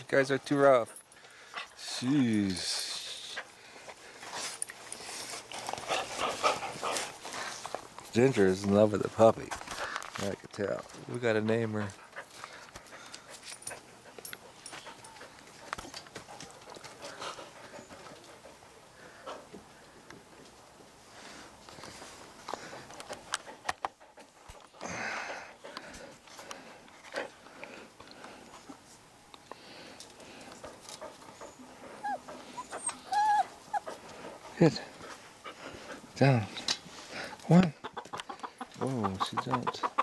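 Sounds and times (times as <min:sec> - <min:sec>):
dogs play-fighting: 0:00.0 - 0:08.1, 0:11.8 - 0:20.9, 0:21.5 - 0:37.4
dogs sniffing: 0:00.3 - 0:08.0, 0:29.5 - 0:37.4.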